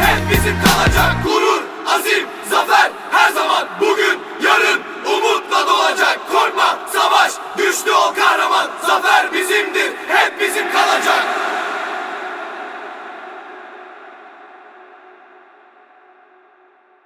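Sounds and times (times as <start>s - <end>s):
crowd chanting: 0.0s - 17.0s.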